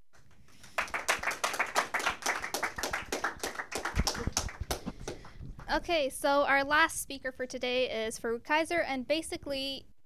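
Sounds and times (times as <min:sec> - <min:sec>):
audience clapping: 0:00.1 - 0:05.8.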